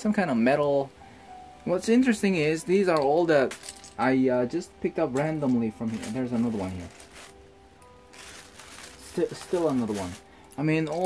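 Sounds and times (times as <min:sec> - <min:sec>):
faint steady background tones: 0:00.0 - 0:11.0
plastic bricks clattering in a bag: 0:05.2 - 0:07.4, 0:08.1 - 0:11.0.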